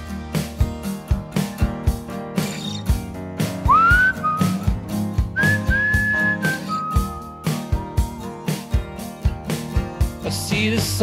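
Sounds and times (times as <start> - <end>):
band with drums and guitar: 0.0 - 11.0
whistled melody: 2.4 - 8.8.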